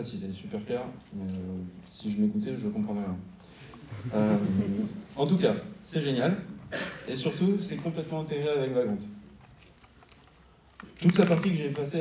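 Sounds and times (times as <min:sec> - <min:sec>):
laptop keyboard clicks: 0:10.0 - 0:11.6.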